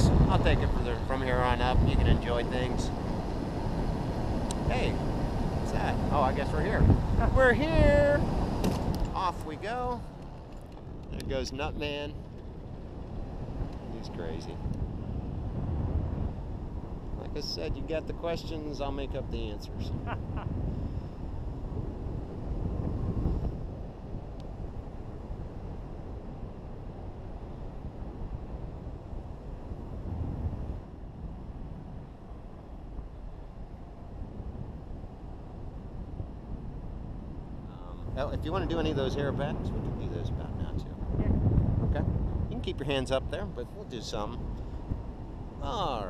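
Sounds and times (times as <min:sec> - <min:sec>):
airflow buffeting microphone: 0:00.0 - 0:46.0.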